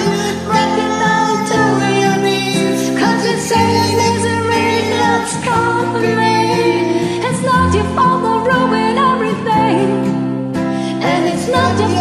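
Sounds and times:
voices singing: 0.0s - 9.9s, 10.9s - 12.0s
pop backing track: 0.0s - 12.0s.

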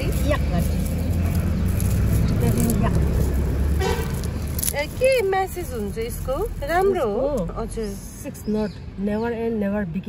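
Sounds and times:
vehicle engine rumbling: 0.0s - 10.0s
car horn toot: 3.8s - 4.3s.

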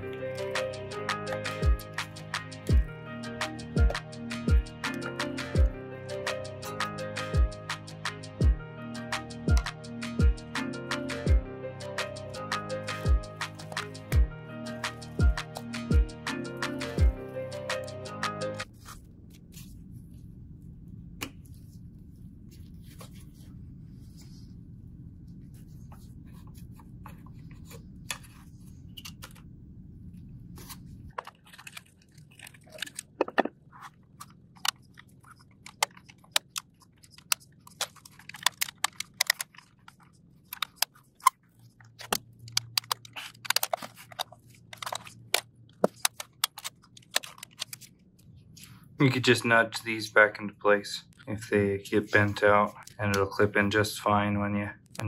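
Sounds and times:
soft background music: 0.0s - 19.0s, 49.0s - 54.7s
clicks of electronics being pried apart: 35.6s - 39.6s, 42.0s - 47.8s.

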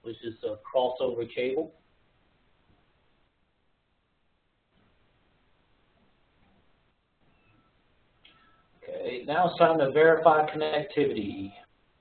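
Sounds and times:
man speaking: 0.0s - 1.8s, 8.8s - 11.7s.

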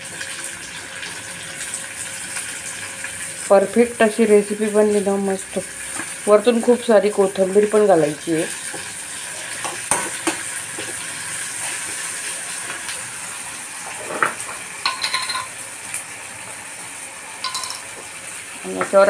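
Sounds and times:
vegetables sizzling in oil: 0.0s - 19.0s.

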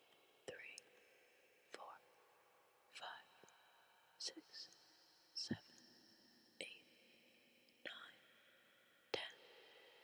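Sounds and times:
person whispering: 0.5s - 0.8s, 1.8s - 2.0s, 3.0s - 3.2s, 4.2s - 4.6s, 5.4s - 5.6s, 6.6s - 6.8s, 7.9s - 8.2s.

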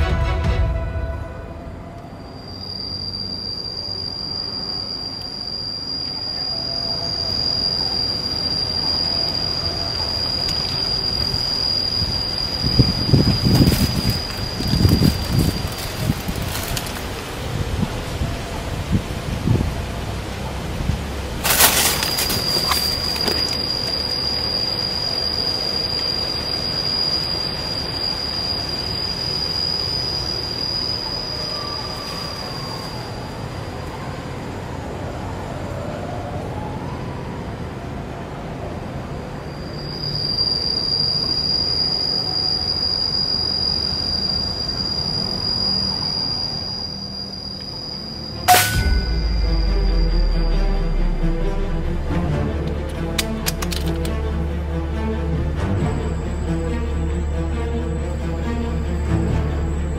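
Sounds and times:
high-pitched cicada drone: 0.8s - 59.9s.

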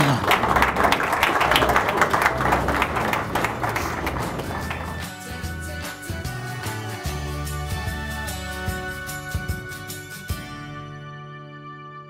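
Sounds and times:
audience applauding: 0.0s - 5.2s.

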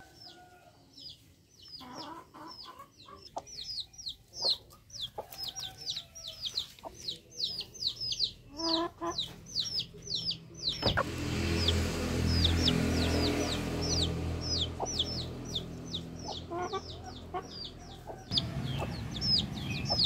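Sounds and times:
chicks peeping: 0.0s - 20.0s.

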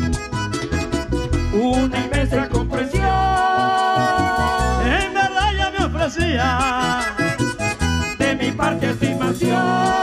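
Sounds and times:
accordion melody: 0.0s - 10.0s
electric bass: 0.0s - 10.0s
percussion: 0.0s - 10.0s.

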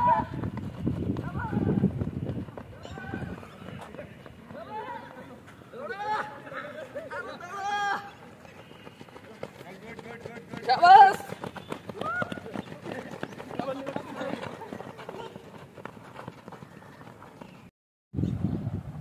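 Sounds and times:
footsteps running on dirt: 0.0s - 6.4s, 7.8s - 17.7s.

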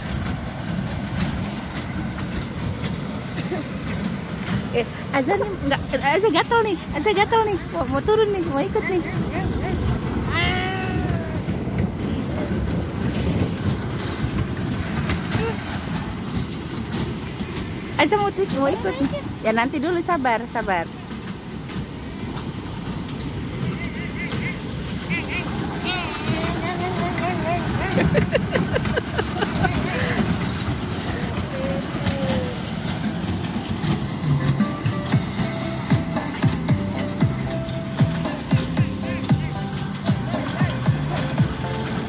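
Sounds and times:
child's high voice: 10.3s - 11.4s, 25.8s - 27.9s.

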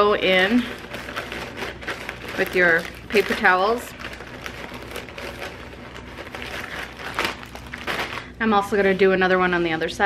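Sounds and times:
plastic bag crinkling: 0.0s - 9.5s.

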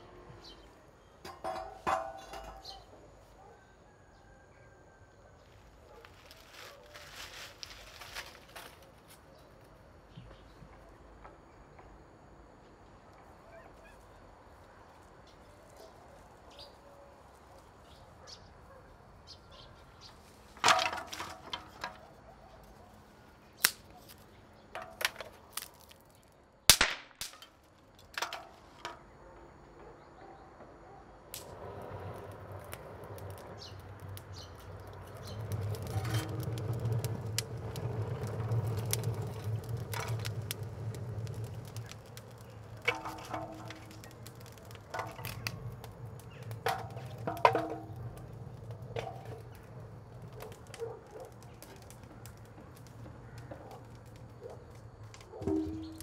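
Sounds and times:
firewood knocking: 20.6s - 22.0s, 34.2s - 56.0s
dry sticks cracking: 23.6s - 29.0s, 31.3s - 31.6s, 32.2s - 56.0s.

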